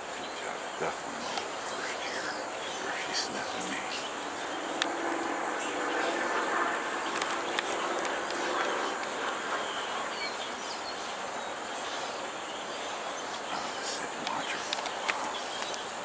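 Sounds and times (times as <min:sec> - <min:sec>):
faint low drone: 0:00.0 - 0:16.0
outdoor noise wash: 0:00.0 - 0:16.0
bird chirps: 0:07.0 - 0:16.0
light clicks: 0:14.1 - 0:15.9.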